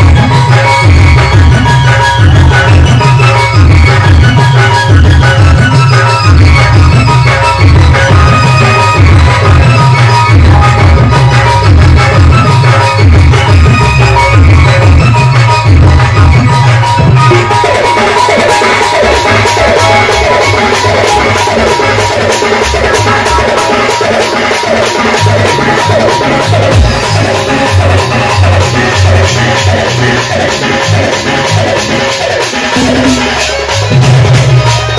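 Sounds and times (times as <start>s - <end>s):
folk band music: 0.0s - 34.9s
heavy drums: 0.0s - 34.9s
keyboard playing dance rhythm: 0.0s - 34.9s.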